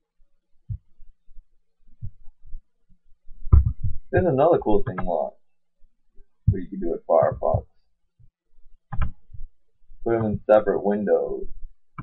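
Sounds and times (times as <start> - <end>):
soft low thumps: 0.6 - 5.4, 6.2 - 12.0.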